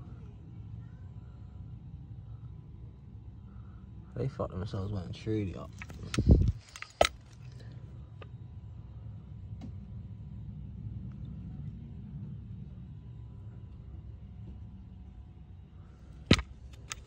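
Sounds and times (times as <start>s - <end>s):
low rumble: 8.0s - 17.0s
metal part thump: 16.3s - 17.0s.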